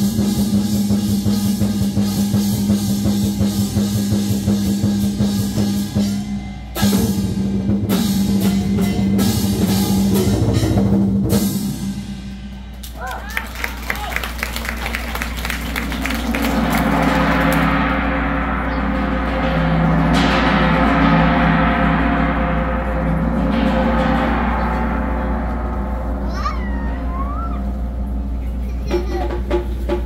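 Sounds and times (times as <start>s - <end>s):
drum strikes: 0.0s - 30.0s
gongs and cymbals ringing: 0.0s - 30.0s
percussion band playing: 0.0s - 30.0s
deep lingering hum: 14.2s - 30.0s.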